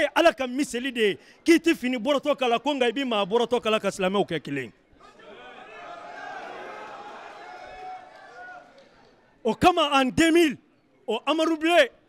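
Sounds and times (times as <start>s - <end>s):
background chatter of people: 0.0s - 9.6s.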